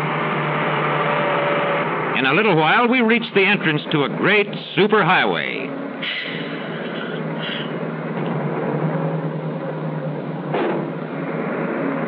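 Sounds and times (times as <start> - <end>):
coach engine and road noise: 0.0 - 12.0.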